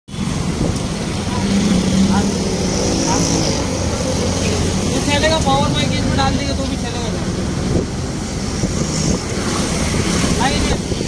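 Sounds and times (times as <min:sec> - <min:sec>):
street traffic noise: 0:00.1 - 0:11.0
vehicle engine rumble: 0:00.1 - 0:11.0.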